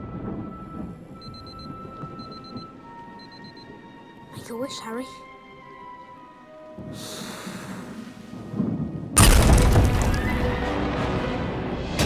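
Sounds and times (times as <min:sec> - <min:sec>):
tense orchestral music: 0:02.7 - 0:12.0.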